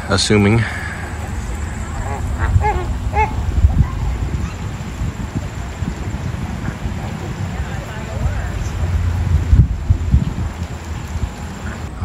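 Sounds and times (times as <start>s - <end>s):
flamingos honking: 0.0s - 12.0s.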